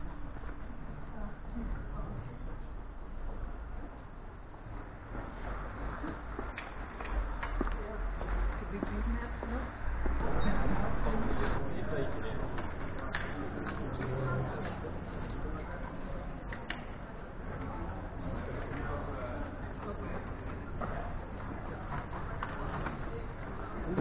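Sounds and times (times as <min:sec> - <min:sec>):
indistinct voices of passers-by: 0:00.0 - 0:24.0
steady low rumble: 0:00.0 - 0:24.0.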